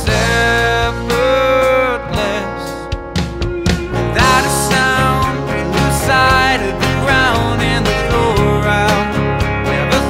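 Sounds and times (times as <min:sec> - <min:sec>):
acoustic guitar: 0:00.0 - 0:10.0
young man singing: 0:00.0 - 0:10.0.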